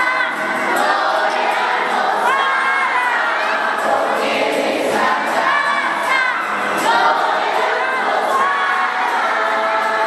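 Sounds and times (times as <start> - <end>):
crowd noise: 0.0 - 10.0
group singing lively song: 0.0 - 10.0.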